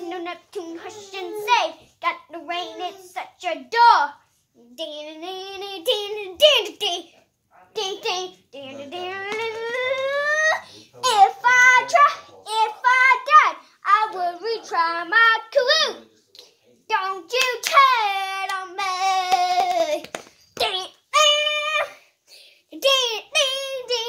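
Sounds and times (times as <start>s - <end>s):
boy singing: 0.0s - 7.1s, 7.8s - 16.0s, 16.9s - 22.0s, 22.7s - 24.0s.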